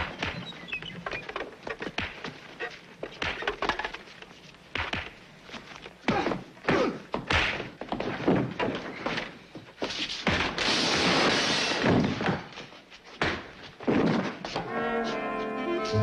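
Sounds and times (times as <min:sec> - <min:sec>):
fight thuds and blows: 0:04.7 - 0:05.2, 0:06.0 - 0:12.6
brass-led orchestral music: 0:14.6 - 0:16.0.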